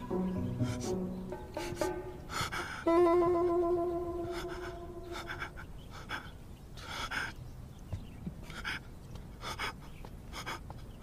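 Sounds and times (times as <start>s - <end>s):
person gasping: 1.6s - 2.9s.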